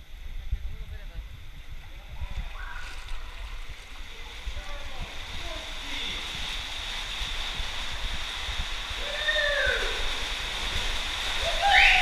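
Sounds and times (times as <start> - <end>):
stream water rushing and splashing: 2.4 - 12.0.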